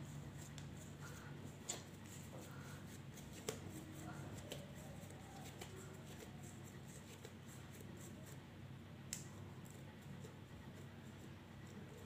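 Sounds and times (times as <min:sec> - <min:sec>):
hands pinching dough: 0:00.0 - 0:08.5
low steady hum: 0:00.0 - 0:12.0.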